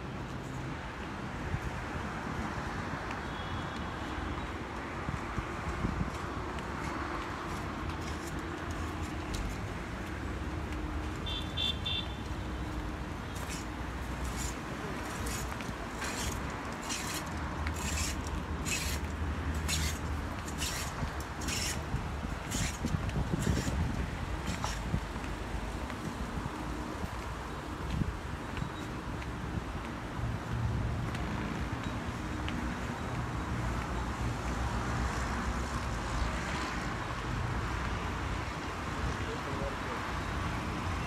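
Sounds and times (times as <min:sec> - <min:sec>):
city traffic rumble: 0:00.0 - 0:41.0
wind on microphone: 0:20.1 - 0:27.2.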